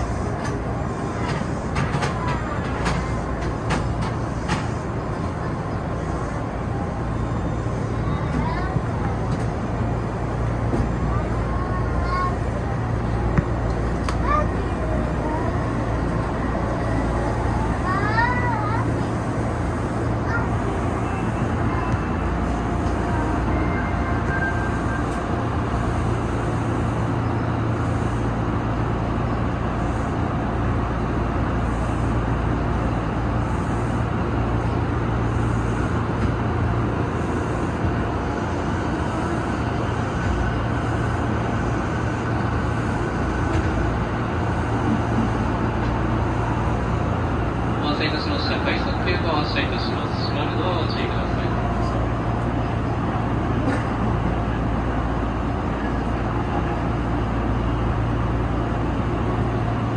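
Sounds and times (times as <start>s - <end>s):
train cab low hum: 0.0s - 59.9s
train pulling out: 0.0s - 59.9s.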